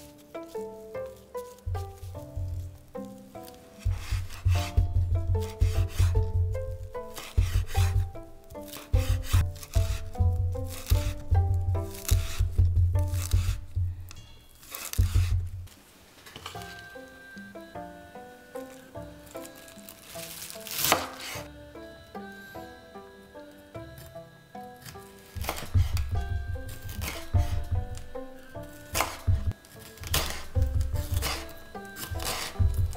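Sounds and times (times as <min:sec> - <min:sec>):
background music: 0:00.0 - 0:32.9
knife knocking on wooden board: 0:03.8 - 0:08.2, 0:08.8 - 0:14.2, 0:15.0 - 0:15.7
knife slicing on wooden board: 0:03.8 - 0:15.4, 0:19.8 - 0:21.5, 0:24.8 - 0:32.8.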